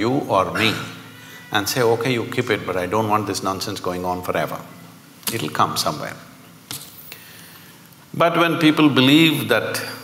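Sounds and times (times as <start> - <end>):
short breath hiss: 7.0 - 8.0.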